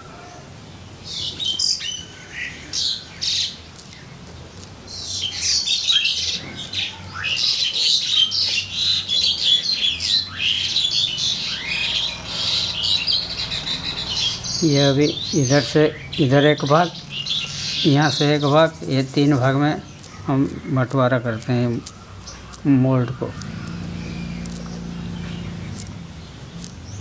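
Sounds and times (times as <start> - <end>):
birds chirping and calling: 0.0 - 27.0.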